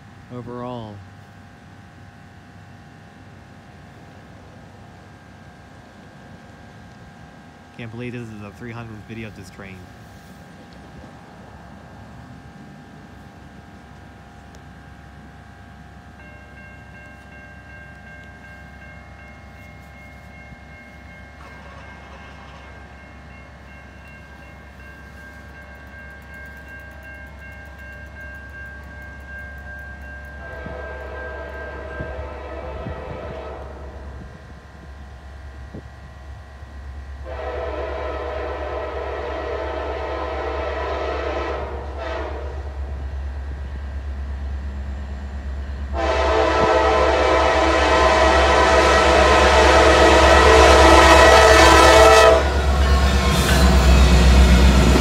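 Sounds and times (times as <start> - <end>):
diesel locomotive rumble: 0.0 - 55.0
crossing signal ringing: 16.1 - 33.2, 44.8 - 55.0
locomotive air horn blasts: 30.4 - 34.2, 37.2 - 42.7, 45.9 - 54.2.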